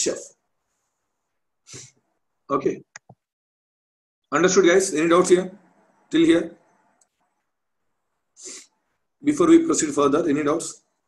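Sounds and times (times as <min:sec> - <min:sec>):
person short sharp breath: 0:01.7 - 0:02.0.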